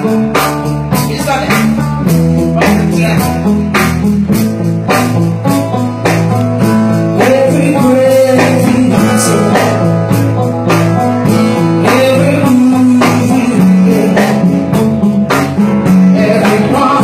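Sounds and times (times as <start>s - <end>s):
bass line: 0.0s - 17.0s
drum beat: 0.0s - 17.0s
guitar: 0.0s - 17.0s.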